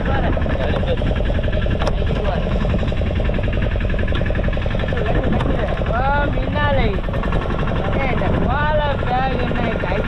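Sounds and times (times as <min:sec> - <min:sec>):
men talking: 0:00.0 - 0:03.0, 0:04.6 - 0:07.1, 0:07.7 - 0:10.0
boat engine running steadily: 0:00.0 - 0:10.0.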